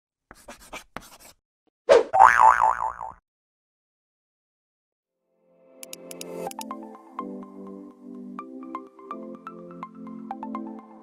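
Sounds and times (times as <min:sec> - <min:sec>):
cartoon boing twang: 0:02.2 - 0:03.2.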